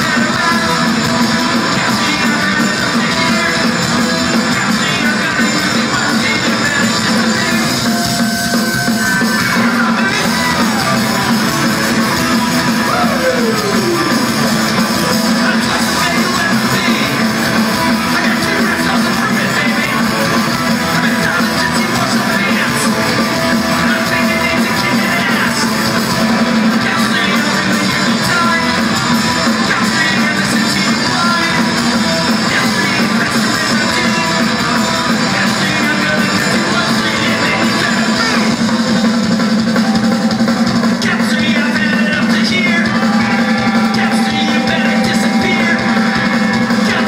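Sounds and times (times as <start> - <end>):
electric guitars strumming: 0.0 - 47.0
punk rock band playing live: 0.0 - 47.0.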